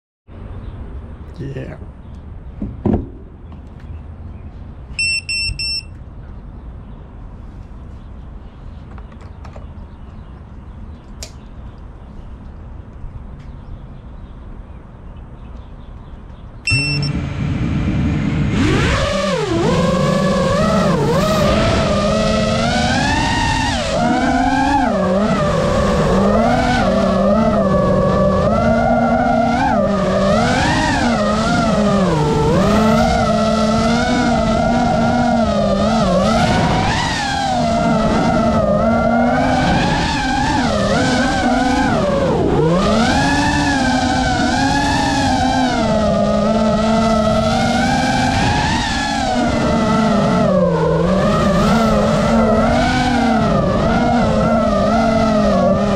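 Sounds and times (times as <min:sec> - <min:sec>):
drone motors whining: 0:16.3 - 0:55.9.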